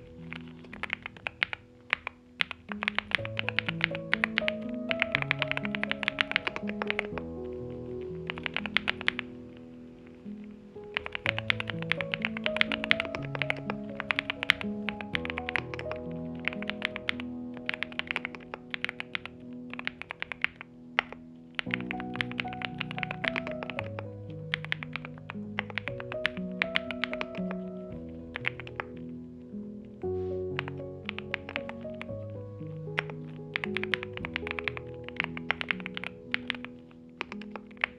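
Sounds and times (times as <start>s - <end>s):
background music: 0.0s - 37.9s
mechanical keyboard typing: 0.3s - 7.3s, 8.3s - 9.2s, 10.9s - 29.0s, 30.6s - 32.1s, 33.0s - 37.9s.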